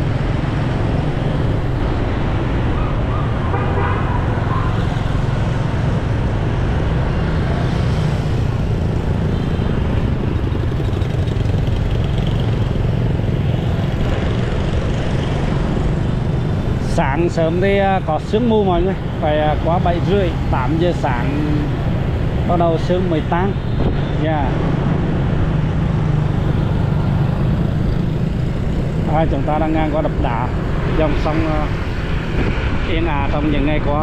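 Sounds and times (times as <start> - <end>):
road noise: 0.0 - 34.0
scooters passing: 7.2 - 16.8.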